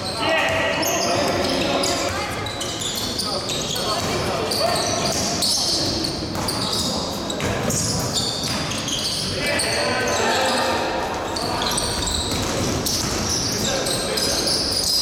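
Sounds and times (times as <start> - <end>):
shoes squeaking: 0.0 - 15.0
basketball bouncing on court: 3.8 - 8.9, 11.2 - 14.0.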